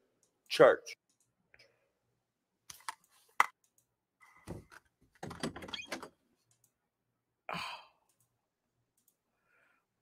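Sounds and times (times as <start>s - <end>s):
person sighing: 7.5s - 8.1s.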